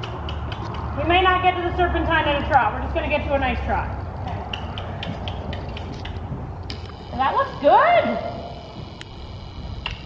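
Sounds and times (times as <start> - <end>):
horse hooves trotting: 0.0 - 10.0.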